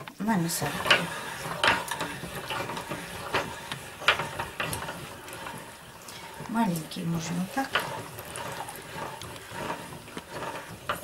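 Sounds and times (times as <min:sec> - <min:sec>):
meat grinder grinding: 0:00.2 - 0:11.0.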